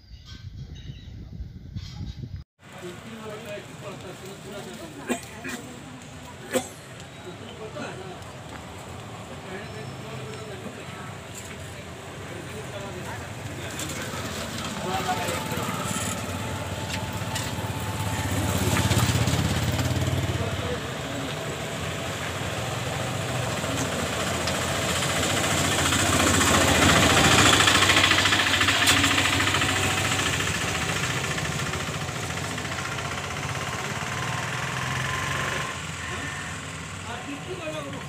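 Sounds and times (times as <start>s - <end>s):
road noise: 1.7s - 38.0s
vehicle engine running: 2.6s - 38.0s.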